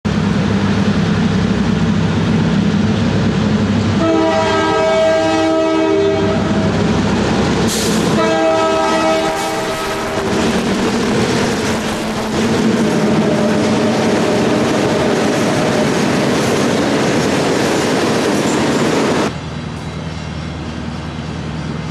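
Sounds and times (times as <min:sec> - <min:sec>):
diesel locomotives running past: 0:00.1 - 0:21.9
locomotive horn chords: 0:04.0 - 0:06.8, 0:08.0 - 0:10.6, 0:13.0 - 0:14.0
wheels clattering on rail: 0:07.4 - 0:21.9.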